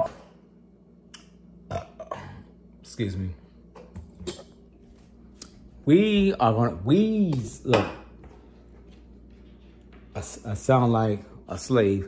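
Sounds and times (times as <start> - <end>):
man coughing: 1.7 - 2.5.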